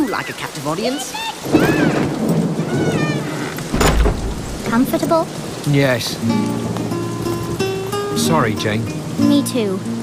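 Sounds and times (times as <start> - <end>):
heavy rain: 0.0 - 10.0
thunderclap with low rumble: 1.4 - 5.7.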